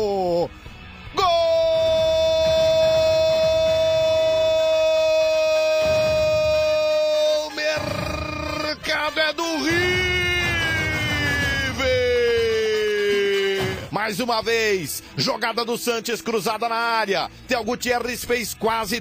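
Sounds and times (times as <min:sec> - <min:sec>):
commentator's long goal shout: 0:01.2 - 0:13.9
stadium crowd noise: 0:01.4 - 0:08.0.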